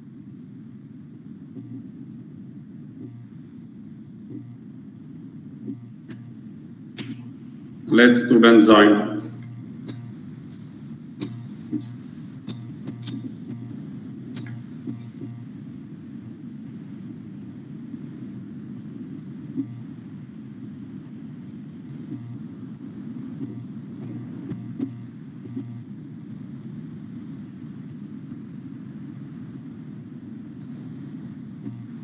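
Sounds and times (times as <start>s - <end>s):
low background rumble: 0.0s - 32.0s
low steady hum: 0.0s - 32.0s
faint clicks: 9.4s - 15.4s.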